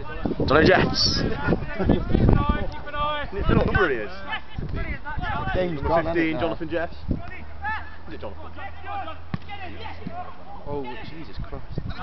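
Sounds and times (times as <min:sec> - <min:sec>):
players and spectators calling out: 0:00.0 - 0:12.0.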